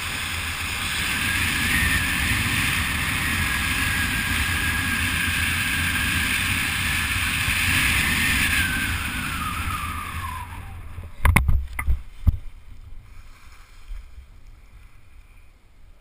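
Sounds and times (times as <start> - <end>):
wind rushing over helmet: 0.0 - 13.1.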